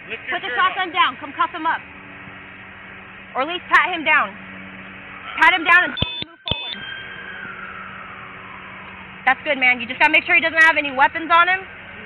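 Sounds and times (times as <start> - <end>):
low hum: 0.0 - 12.0
faint falling tone: 5.8 - 9.4.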